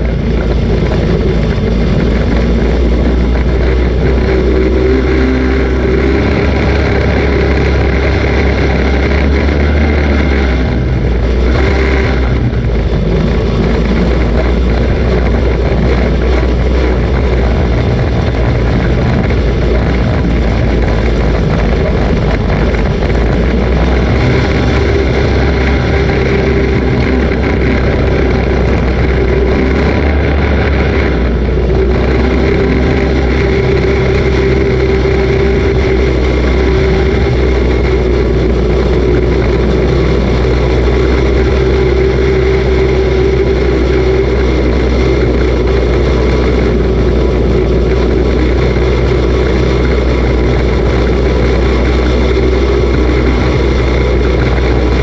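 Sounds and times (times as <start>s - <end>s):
race car engine running: 0.0s - 55.0s.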